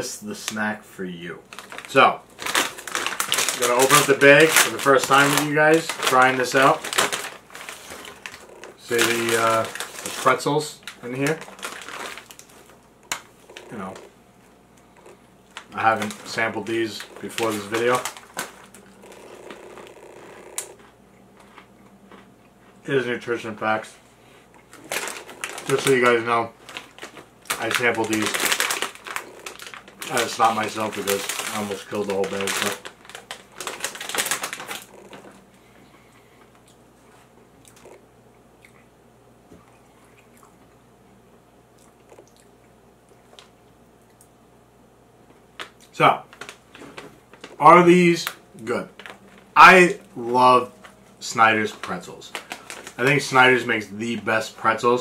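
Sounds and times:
plastic snack bag crinkling: 1.4 - 14.1, 14.8 - 20.9, 24.6 - 35.5, 45.5 - 55.0
faint crunches: 1.5 - 22.8, 24.3 - 38.0, 45.2 - 53.4
quiet chewing: 11.5 - 15.7, 18.0 - 22.9, 34.4 - 40.8, 41.7 - 44.4.

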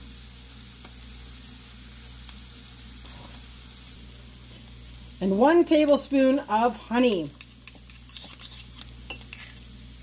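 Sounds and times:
meat sizzling in a pan: 0.0 - 10.0.

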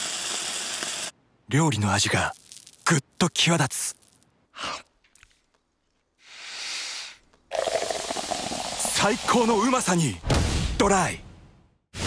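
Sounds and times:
beer pouring into a glass: 7.5 - 9.6.

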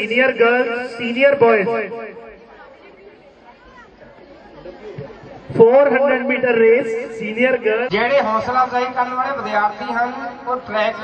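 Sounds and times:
faint background chatter: 2.2 - 5.6.

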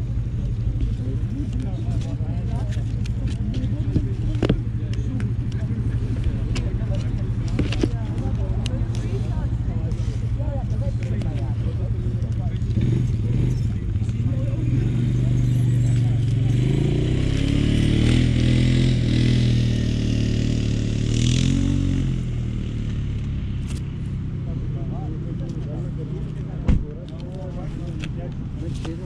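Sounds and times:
background voices: 0.0 - 17.4
engine running: 0.0 - 29.0.

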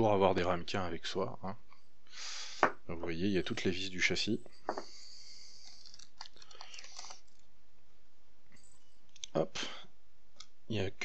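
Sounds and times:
small clicks and scrapes of handling parts: 5.5 - 7.5, 8.5 - 9.4.

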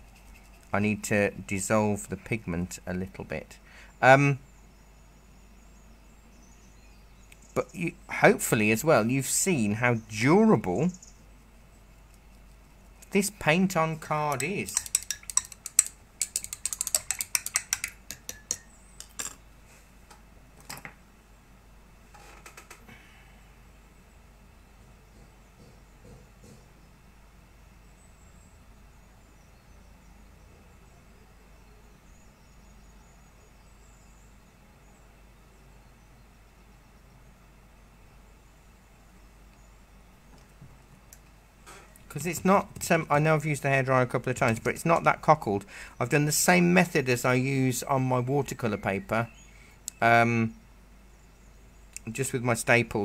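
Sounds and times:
painting gear clicking and tapping: 12.1 - 19.4.

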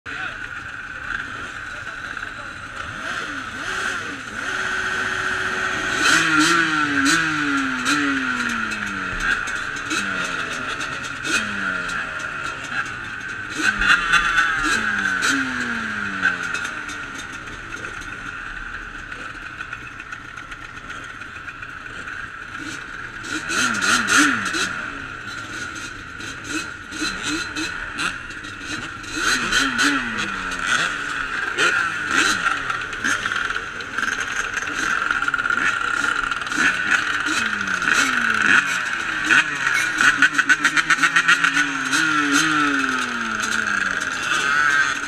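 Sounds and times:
motorcycle engines revving: 0.1 - 45.0
steady engine drone: 0.1 - 45.0.

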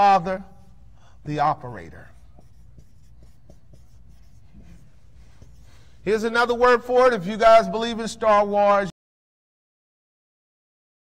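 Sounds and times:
low room hum: 0.0 - 8.9
marker writing on whiteboard: 1.5 - 6.9.

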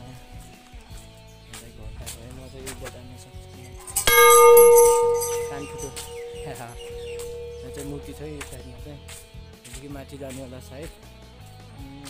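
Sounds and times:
large metal bell ringing: 3.8 - 8.8.

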